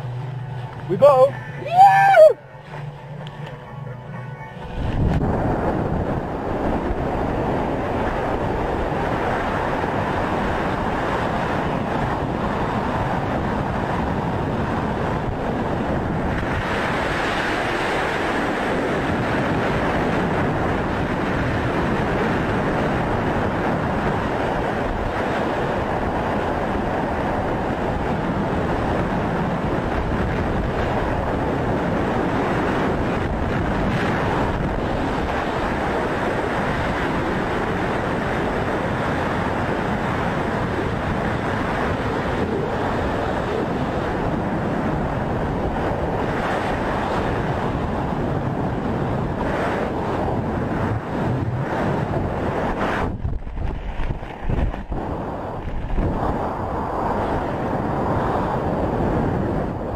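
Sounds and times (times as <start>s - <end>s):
loud wind roar: 0.0s - 59.9s.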